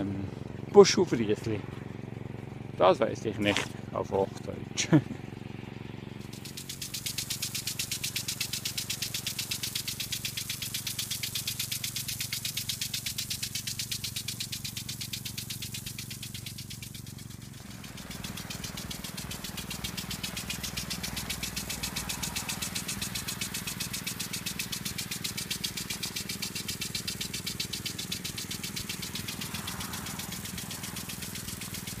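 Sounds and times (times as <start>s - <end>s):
low engine hum: 0.0s - 32.0s
impact sprinkler ticking: 6.0s - 32.0s
hiss of water spray: 6.3s - 32.0s.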